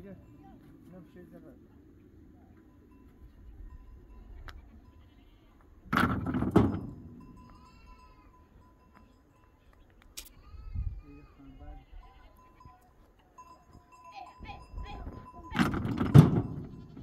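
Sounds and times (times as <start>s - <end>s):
sheep or goats bleating: 4.2s - 5.7s, 7.4s - 8.6s, 9.6s - 13.0s, 16.3s - 17.0s.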